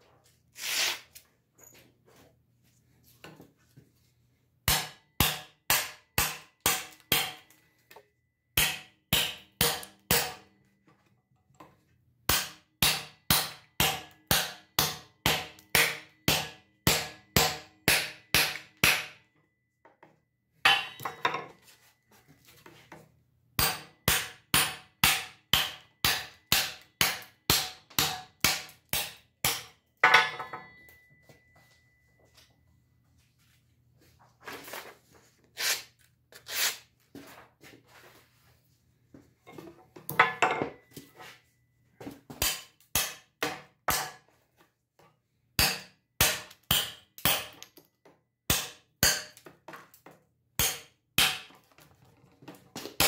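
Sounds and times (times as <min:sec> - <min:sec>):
knock with metallic ring: 0:30.0 - 0:31.6, 0:40.2 - 0:40.9.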